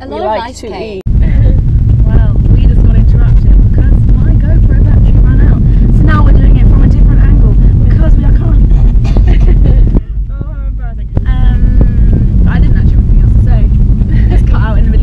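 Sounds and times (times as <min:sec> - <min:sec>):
road and engine rumble in car: 0:00.0 - 0:15.0.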